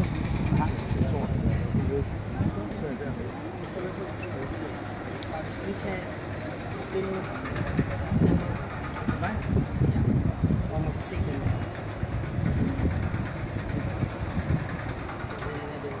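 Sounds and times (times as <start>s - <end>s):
people talking indistinctly: 0.0s - 16.0s
wind buffeting microphone: 0.0s - 16.0s.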